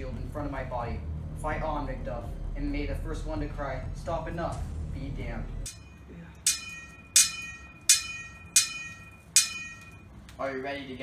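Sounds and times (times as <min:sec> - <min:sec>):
metallic sword clangs: 0:05.7 - 0:10.0.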